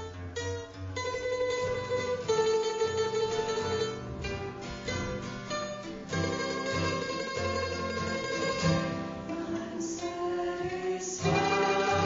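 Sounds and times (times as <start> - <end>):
acoustic guitar: 0.0 - 12.0
plucked mandolin: 0.0 - 12.0
women singing a hymn in harmony: 9.3 - 12.0.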